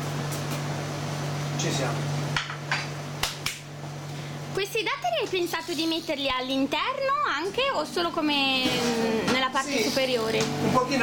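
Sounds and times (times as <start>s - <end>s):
gelato freezer hum: 0.0s - 11.0s.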